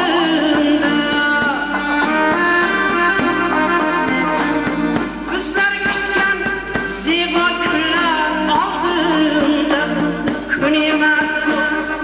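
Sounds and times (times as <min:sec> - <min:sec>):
person singing: 0:00.0 - 0:03.4, 0:05.3 - 0:12.0
held melody notes: 0:00.0 - 0:06.4.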